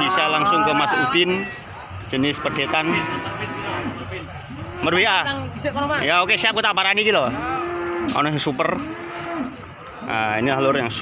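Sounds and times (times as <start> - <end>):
crowd of men chattering: 0.0 - 11.0
cattle mooing: 2.2 - 6.4, 7.1 - 9.7.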